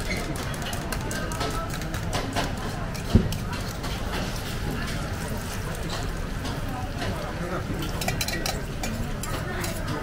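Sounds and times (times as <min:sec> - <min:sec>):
metal utensils clinking: 0:07.8 - 0:10.0.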